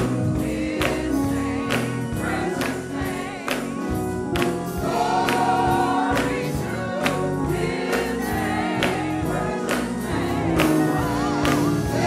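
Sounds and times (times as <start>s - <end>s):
gospel choir singing: 0.0s - 12.0s
hand claps on beat: 0.0s - 12.0s.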